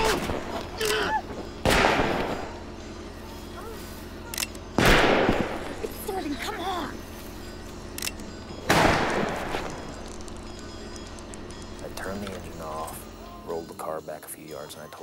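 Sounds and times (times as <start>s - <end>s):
person crying out: 0.0s - 1.4s.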